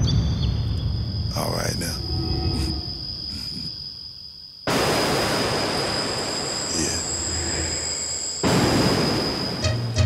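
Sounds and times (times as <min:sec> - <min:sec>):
high whistling tones: 0:05.8 - 0:10.0.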